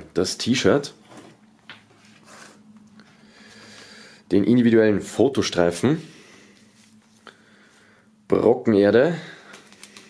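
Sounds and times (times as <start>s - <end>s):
paper and card rustling: 9.5s - 10.0s.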